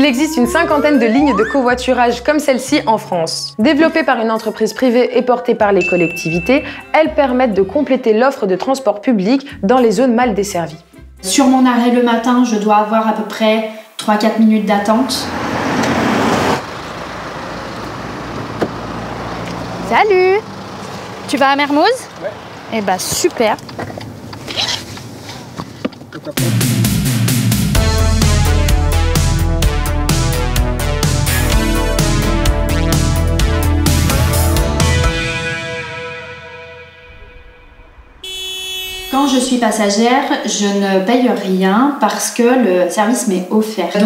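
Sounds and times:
low road rumble: 0:14.8 - 0:40.6
car engine idling: 0:14.9 - 0:27.0
car horn blare: 0:35.0 - 0:39.8.

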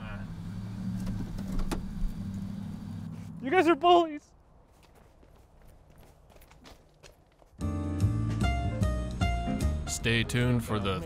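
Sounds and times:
car engine idling: 0:00.0 - 0:03.3.

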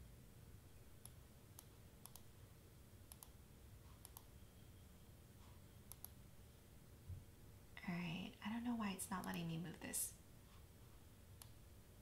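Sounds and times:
low room hum: 0:00.0 - 0:12.0
computer mouse clicks: 0:01.0 - 0:02.3, 0:03.1 - 0:03.4, 0:04.0 - 0:04.3, 0:05.9 - 0:06.2, 0:09.2 - 0:09.5, 0:11.4 - 0:11.6.

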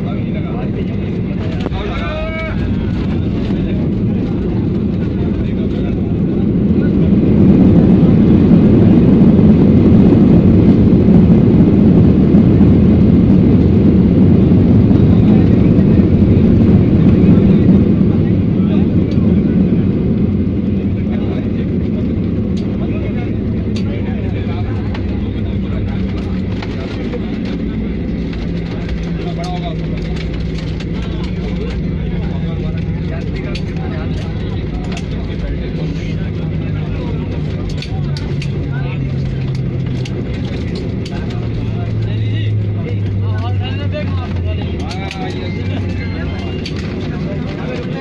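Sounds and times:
jet engines in reverse thrust: 0:00.0 - 0:48.0.

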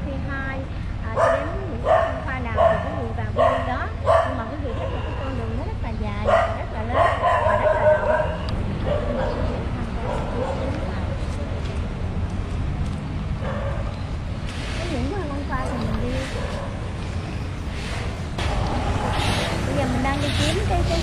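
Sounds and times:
dog barking: 0:01.2 - 0:05.4, 0:06.2 - 0:10.8, 0:13.4 - 0:13.9.

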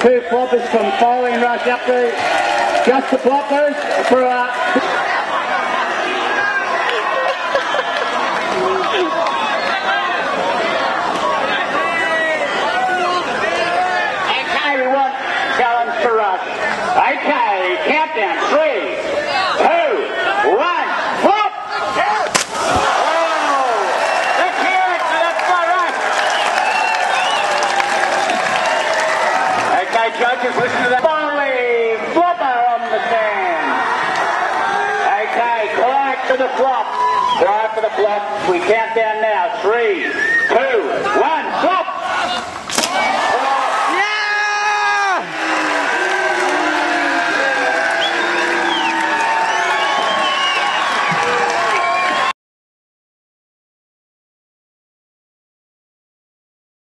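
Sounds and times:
crowd cheering and shouting: 0:00.0 - 0:52.4
body slapping onto water: 0:22.2 - 0:23.1
long loud yell: 0:43.1 - 0:52.3.

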